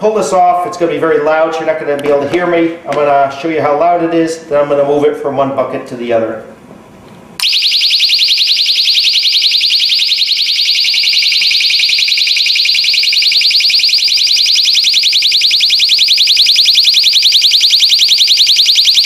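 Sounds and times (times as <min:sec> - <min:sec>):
shrill pulsing alarm: 0:07.4 - 0:19.0.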